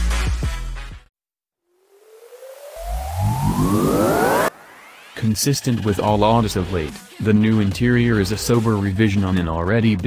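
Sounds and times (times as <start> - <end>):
deep rising tones: 1.8 - 5.2
synthesized rising tone over hiss: 1.8 - 5.3.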